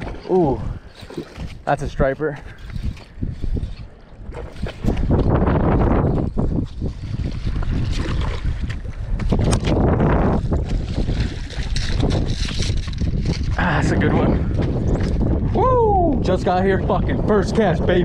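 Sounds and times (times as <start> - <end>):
wind buffeting the microphone: 0.0 - 18.0.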